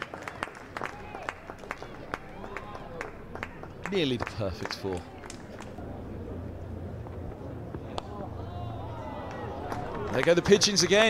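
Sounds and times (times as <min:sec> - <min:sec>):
steady low rumble: 0:01.4 - 0:10.1.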